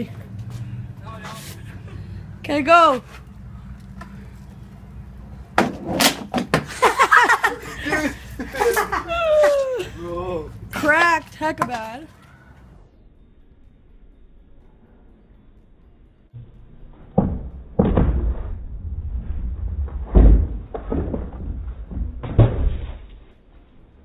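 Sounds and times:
scooter wheels rolling on concrete: 0.0 - 12.8
scooter thudding on wooden ramp: 5.5 - 6.8, 17.0 - 23.3.

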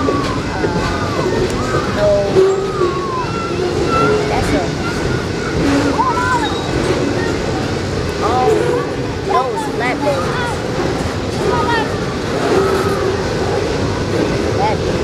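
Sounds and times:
freight train rumbling past: 0.0 - 15.0
people talking indistinctly: 0.0 - 15.0.

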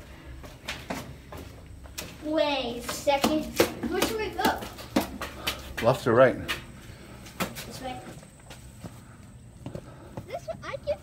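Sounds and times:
footsteps on stone stairs: 0.0 - 11.0.

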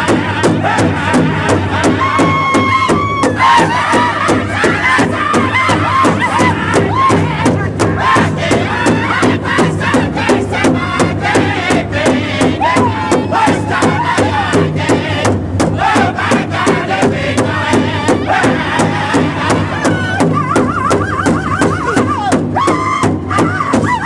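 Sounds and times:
big drum steady fast beat: 0.0 - 24.0
group singing high-pitched in unison: 0.0 - 24.0.

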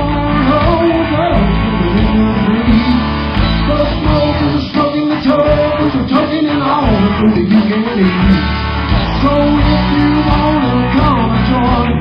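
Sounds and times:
electric guitar lead lines: 0.0 - 12.0
live rock band playing: 0.0 - 12.0.

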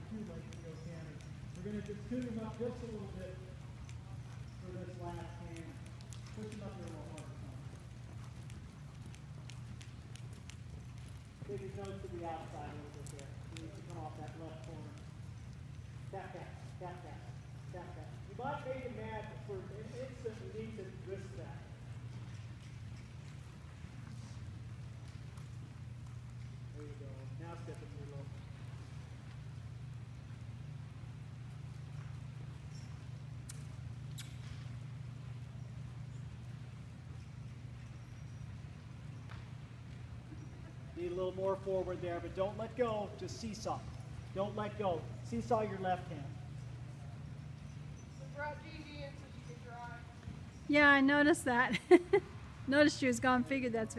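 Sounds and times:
horse hoofbeats on dirt: 0.0 - 51.7
steady low hum: 0.0 - 53.9
faint clicks: 5.4 - 16.1.

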